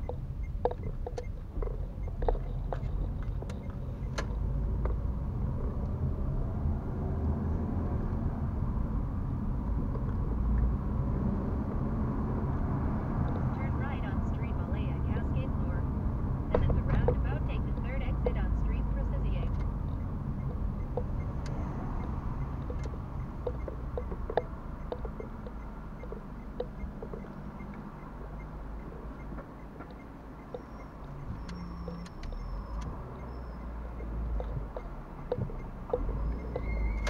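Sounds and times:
car engine and tyres rumbling: 0.0 - 37.0.

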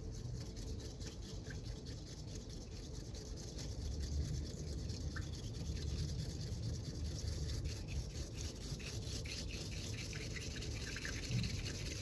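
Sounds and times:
tea whisk swishing in bowl: 0.0 - 12.0.

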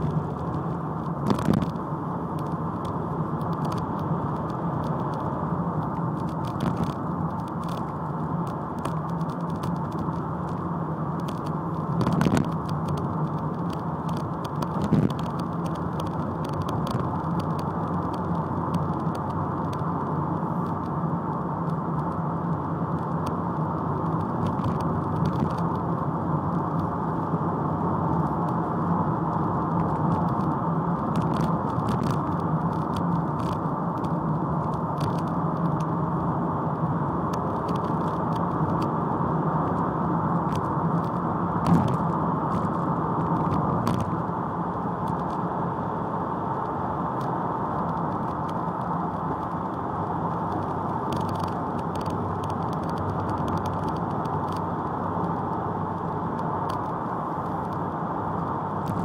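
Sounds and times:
car engine humming inside cabin: 0.0 - 59.0.

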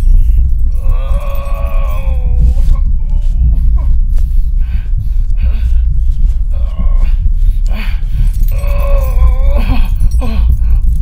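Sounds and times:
deep steady rumble: 0.0 - 11.0
person groaning and moaning: 0.7 - 11.0.

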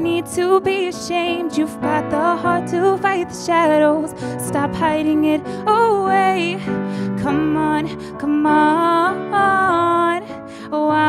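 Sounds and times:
piano: 0.0 - 11.0
woman singing a ballad: 0.0 - 11.0.

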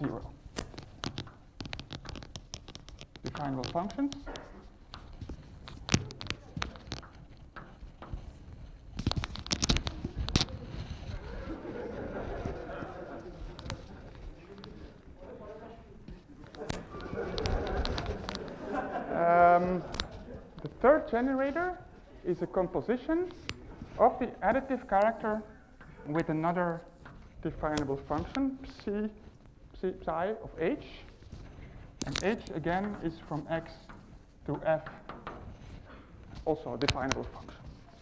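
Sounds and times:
fabric rustling: 0.0 - 38.0
chalk tapping and scratching on blackboard: 0.5 - 11.6.

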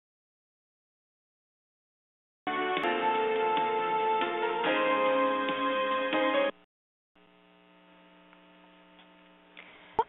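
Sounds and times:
waiting music: 2.5 - 6.6
faint electrical hum: 7.2 - 10.0.

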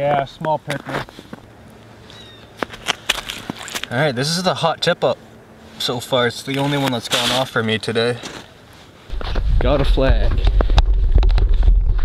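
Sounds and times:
boots stepping on snowy ice: 2.6 - 3.9
sharp ice crunches: 2.7 - 3.9.

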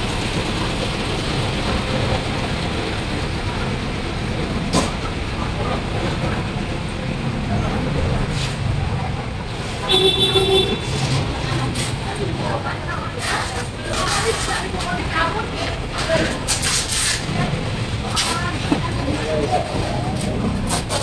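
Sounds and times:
distant voices: 0.0 - 21.0
traffic din: 0.0 - 21.0.

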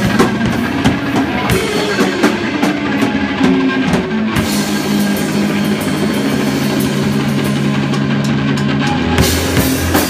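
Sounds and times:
drum kit with cymbals: 0.0 - 10.0
electric guitars: 0.0 - 10.0.

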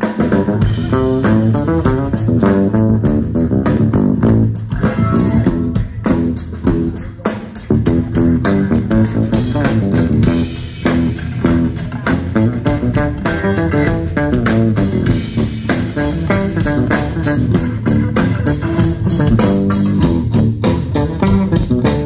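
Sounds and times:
live blues-rock band: 0.0 - 22.0.

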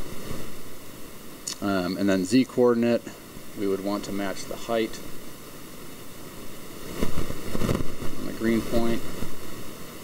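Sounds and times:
microphone static hiss: 0.0 - 10.0.

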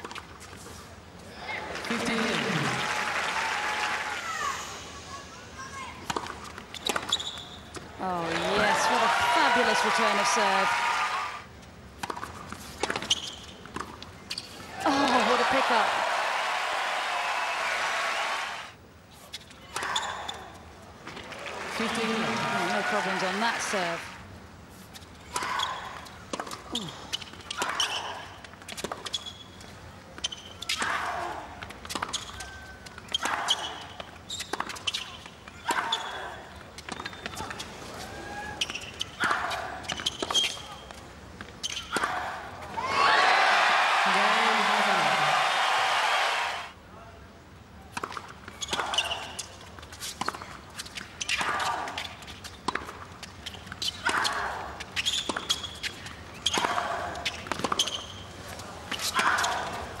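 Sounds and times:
crowd applause: 1.7 - 4.7, 8.3 - 11.4, 14.8 - 18.8, 21.2 - 24.2, 42.9 - 46.7
tennis ball bouncing: 6.0 - 8.7, 12.0 - 14.0, 51.3 - 54.3, 55.2 - 58.1
rackets striking tennis ball: 50.2 - 58.2.

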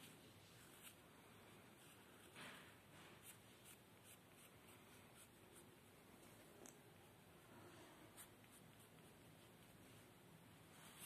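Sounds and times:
pencil scratching on paper: 3.2 - 5.7.

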